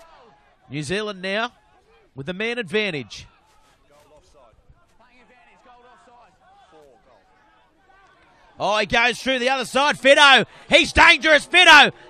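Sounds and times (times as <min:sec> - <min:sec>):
distant voices shouting: 0:09.1 - 0:12.0.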